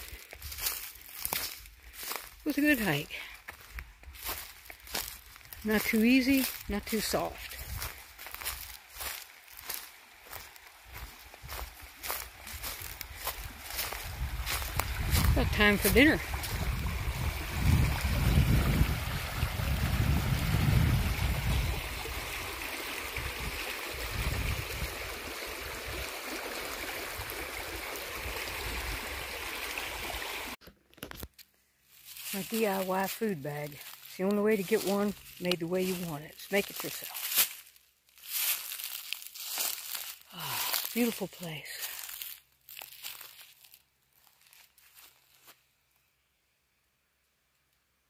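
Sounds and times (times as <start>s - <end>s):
footsteps crunching dry leaves: 0.0s - 22.7s, 31.8s - 45.7s
creek rushing over stones: 0.0s - 30.6s, 31.9s - 43.7s
wind rumble on microphone: 13.5s - 22.4s, 23.2s - 26.0s.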